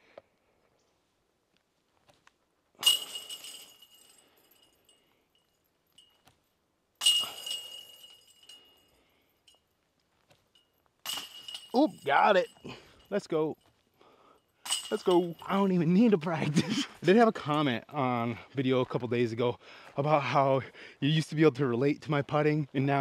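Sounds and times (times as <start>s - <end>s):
chains jangling: 2.8s - 6.2s, 7.0s - 9.7s, 10.4s - 15.5s
discs striking metal chains: 2.8s - 6.3s, 7.0s - 17.0s.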